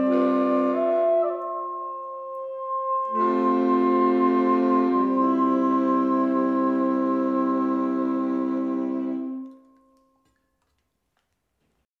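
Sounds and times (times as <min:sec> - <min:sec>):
saxophone ensemble chord: 0:00.0 - 0:09.6.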